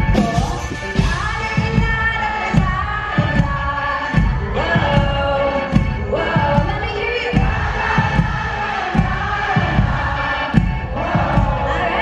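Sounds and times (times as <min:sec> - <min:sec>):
live pop-rock band: 0:00.0 - 0:12.0
woman singing: 0:00.0 - 0:12.0
kick drum thumping: 0:05.8 - 0:11.7.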